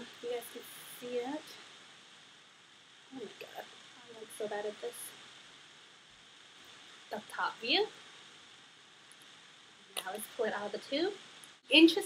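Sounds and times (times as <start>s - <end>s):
faint steady background hiss: 0.0s - 12.0s.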